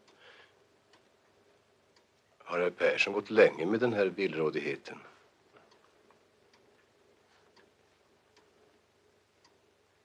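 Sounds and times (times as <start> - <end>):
clock ticking: 0.0 - 2.6, 5.5 - 10.0.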